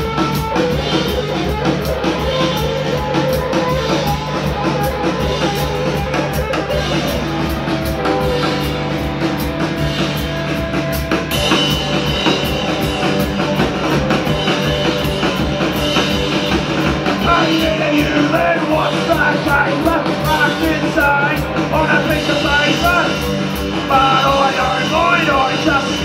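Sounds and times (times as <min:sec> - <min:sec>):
drum kit beat: 0:00.0 - 0:26.0
electric guitar playing: 0:00.0 - 0:26.0.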